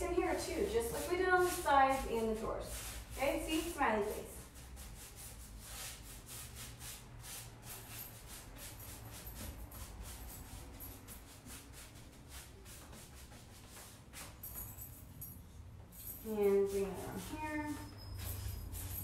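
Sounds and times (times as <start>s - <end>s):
paintbrush strokes scratching: 0.0s - 14.4s, 16.5s - 19.0s.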